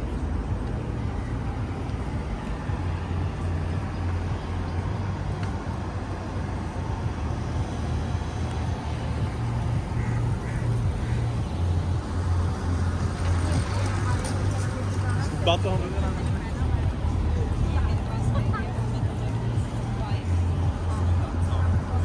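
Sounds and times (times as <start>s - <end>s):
low city rumble: 0.0s - 22.0s.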